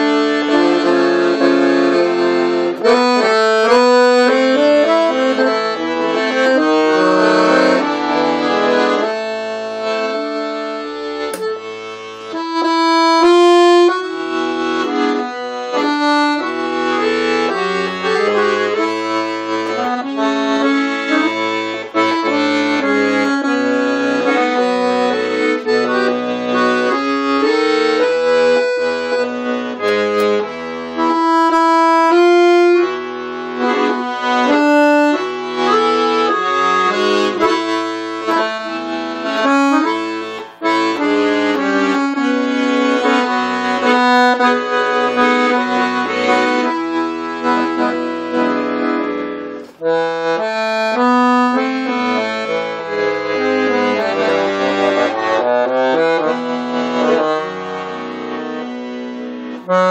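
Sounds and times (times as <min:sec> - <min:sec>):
accordion bass notes: 0:00.0 - 0:59.9
accordion melody: 0:00.0 - 0:59.9.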